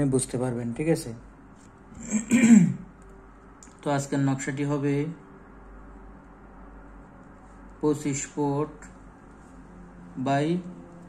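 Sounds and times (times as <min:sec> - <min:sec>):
man clearing throat: 0:02.0 - 0:02.9.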